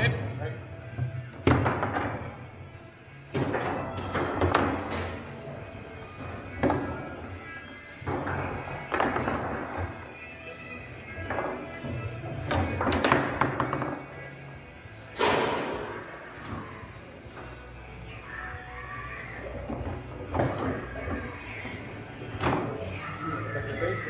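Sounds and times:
background music: 0.0s - 24.0s
foosball ball and rods knocking: 1.4s - 2.3s, 3.3s - 5.4s, 8.0s - 10.1s, 11.2s - 14.2s, 19.6s - 21.7s.

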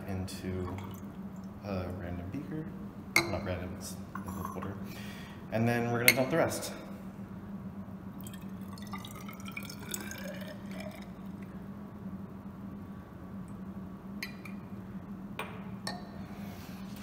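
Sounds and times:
steady low hum: 0.0s - 17.0s
water pouring into glass cylinder: 0.6s - 1.6s, 8.2s - 11.5s
water trickling and dripping: 8.2s - 11.5s.

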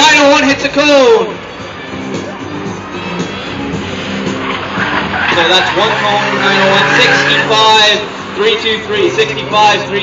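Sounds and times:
music playing: 0.0s - 10.0s
car engine: 1.3s - 10.0s
tyre noise: 2.2s - 9.5s.

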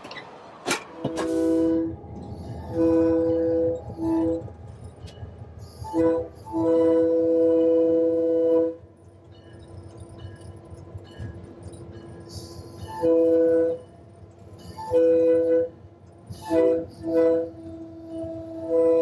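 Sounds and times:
low locomotive rumble: 0.0s - 19.0s
locomotive air horn blasts: 1.0s - 4.6s, 5.7s - 8.8s, 12.8s - 13.9s, 14.8s - 19.0s.

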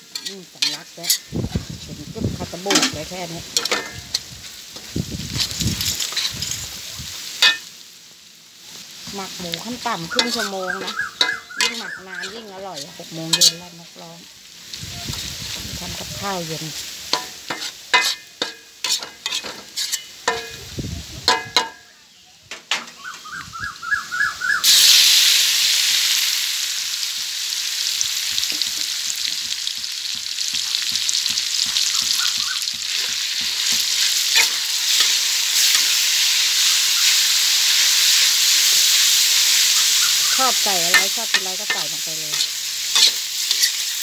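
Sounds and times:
metal ladle scraping a wok: 0.0s - 1.3s, 2.4s - 6.7s, 7.4s - 7.7s, 9.6s - 13.8s, 16.8s - 21.8s, 30.5s - 44.0s
meat sizzling in hot oil: 0.0s - 21.9s, 23.0s - 44.0s
food frying in oil: 0.0s - 22.1s, 23.0s - 44.0s.

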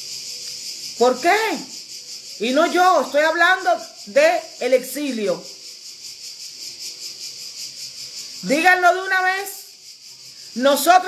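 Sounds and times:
pulsing high-pitched hiss: 0.0s - 11.0s.

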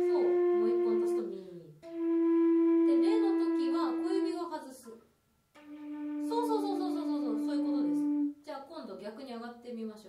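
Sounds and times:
woman talking: 0.0s - 1.8s, 2.9s - 5.0s, 6.3s - 10.0s
flute holding low note: 0.0s - 4.4s, 5.6s - 8.4s.

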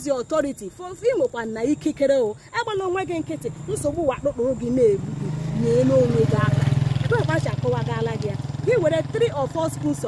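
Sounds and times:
woman speaking: 0.0s - 10.0s
vehicle engine droning: 3.1s - 10.0s.

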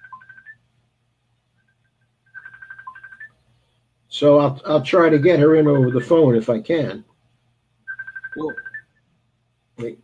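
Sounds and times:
electronic ringtone beeps: 0.0s - 0.6s, 1.6s - 3.4s, 5.1s - 6.2s, 7.9s - 9.0s.

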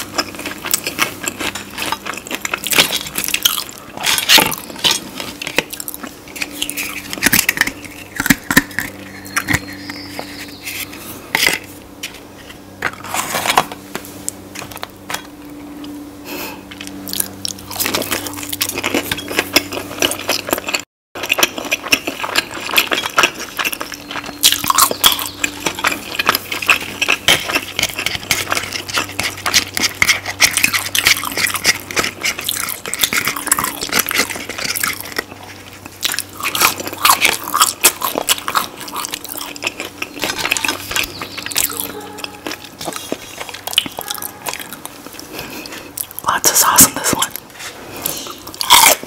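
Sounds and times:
crunchy chewing: 0.0s - 49.0s.

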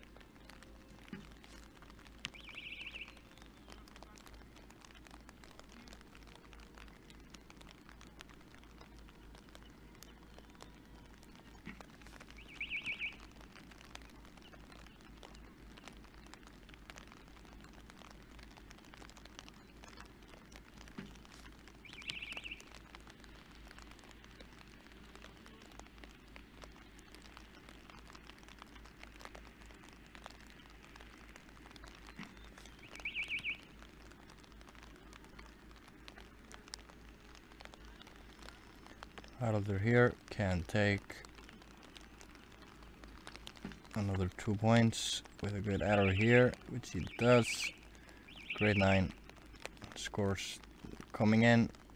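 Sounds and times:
light rain patter: 0.0s - 51.9s.

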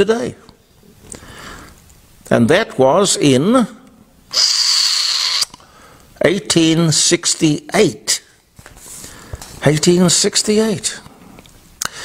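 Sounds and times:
person breathing in through nose: 1.1s - 1.8s, 5.6s - 6.1s.

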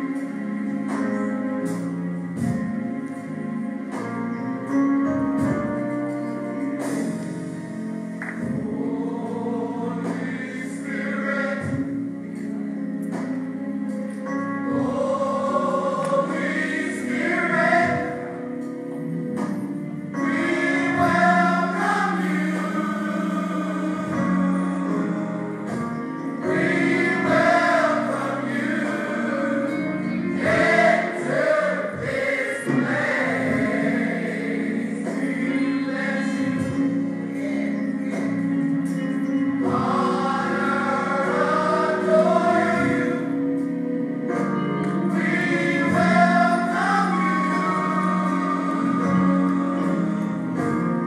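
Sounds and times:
choir singing gospel song: 3.8s - 51.0s.

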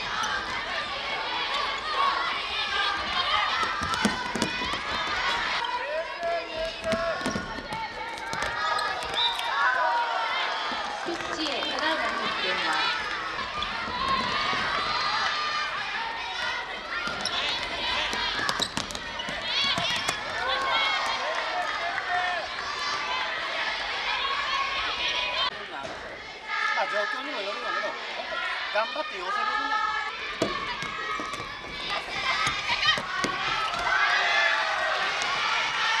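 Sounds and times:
girls shouting and calling: 26.5s - 34.6s.

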